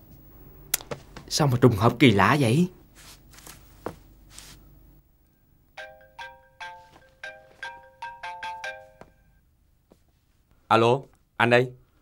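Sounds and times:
mobile phone ringtone chiming: 5.8 - 9.4.

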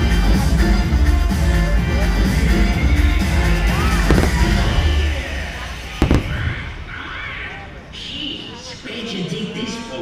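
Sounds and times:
bass-heavy show music: 0.0 - 6.3
fireworks bursting: 3.7 - 7.5.

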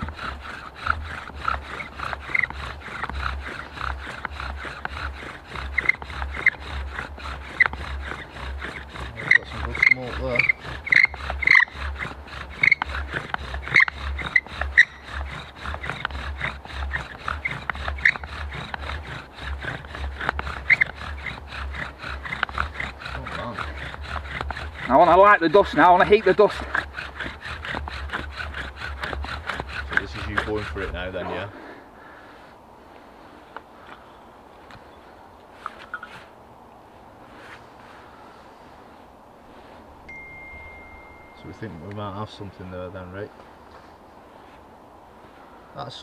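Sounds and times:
bow drill spindle squeaking: 0.0 - 31.5, 40.1 - 42.6.

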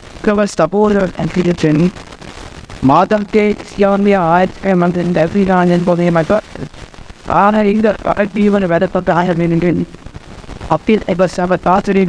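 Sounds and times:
man speaking into microphone: 0.2 - 2.0, 2.8 - 12.0.

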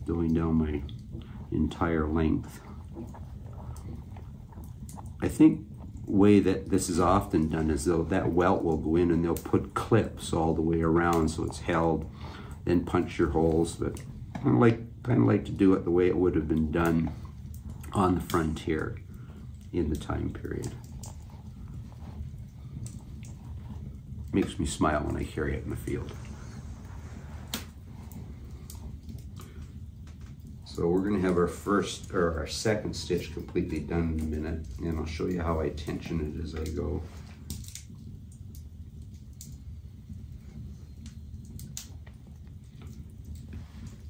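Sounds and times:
low steady hum: 0.0 - 44.0
small clicks and rustles: 0.2 - 44.0.

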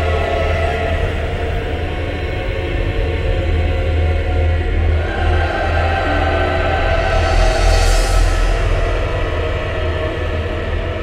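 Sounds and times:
low horror drone: 0.0 - 11.0.

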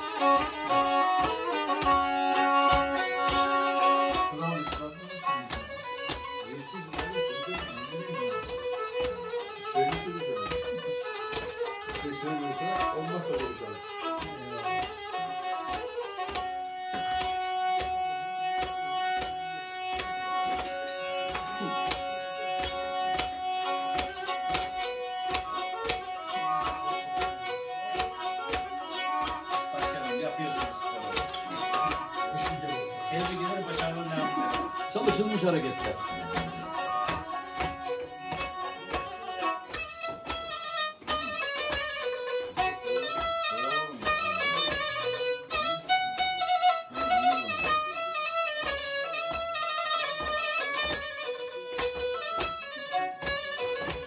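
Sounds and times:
bowed fiddle playing folk tune: 0.0 - 54.0.

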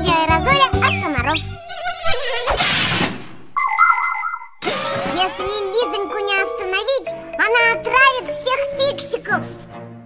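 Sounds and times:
children's show music: 0.0 - 1.6, 3.6 - 10.0.

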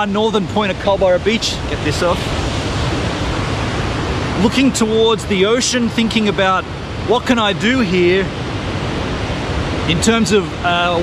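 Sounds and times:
ocean surf washing onto beach: 0.0 - 11.0.

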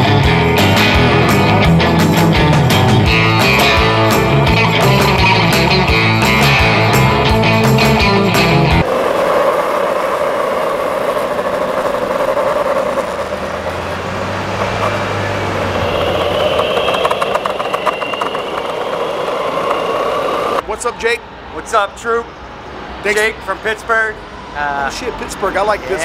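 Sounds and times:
electric skateboard rolling on concrete: 0.0 - 21.2.

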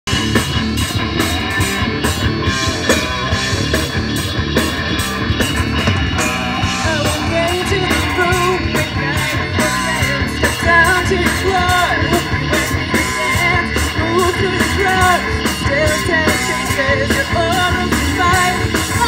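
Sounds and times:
electric bass: 0.0 - 19.0
drum kit: 0.1 - 19.0
electric guitars: 0.1 - 19.0.

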